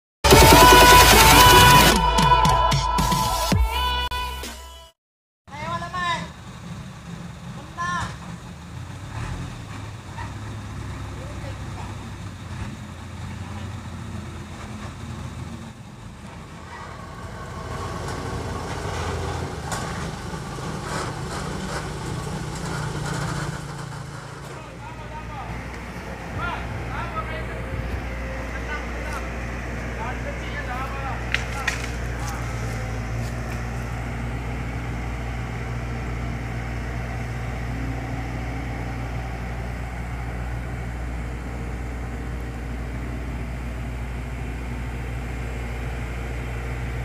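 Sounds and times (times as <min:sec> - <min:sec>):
heavy vehicle engine droning: 0:00.2 - 0:03.4, 0:05.5 - 0:47.0
people talking: 0:07.5 - 0:08.2, 0:11.1 - 0:12.0, 0:24.4 - 0:25.6, 0:26.3 - 0:32.7.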